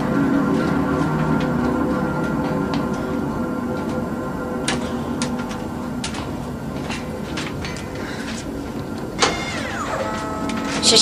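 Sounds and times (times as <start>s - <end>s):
falling whine: 0.0s - 11.0s
low drone: 0.0s - 11.0s.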